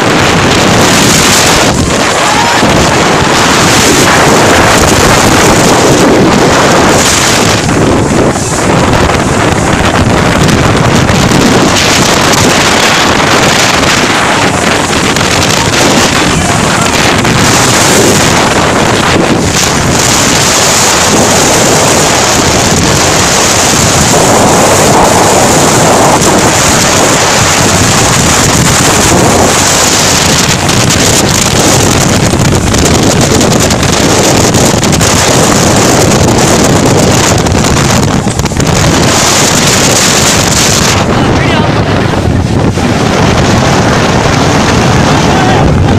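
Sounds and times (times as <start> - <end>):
wind and rain on microphone: 0.0 - 45.9.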